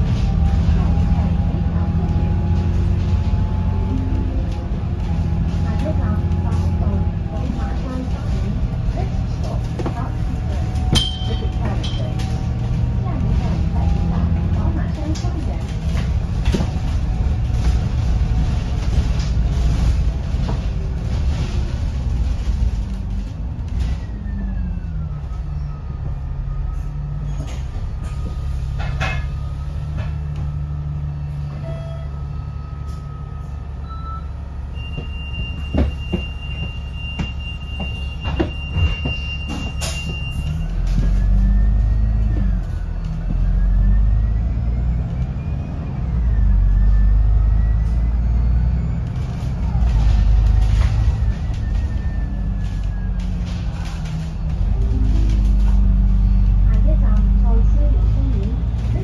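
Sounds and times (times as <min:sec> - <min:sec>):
bus diesel engine droning: 0:00.0 - 0:59.0
drivetrain whine: 0:00.0 - 0:59.0.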